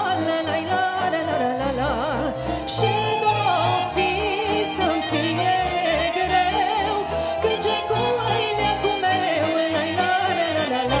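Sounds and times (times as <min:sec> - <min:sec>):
folk band with violins and accordion: 0:00.0 - 0:11.0.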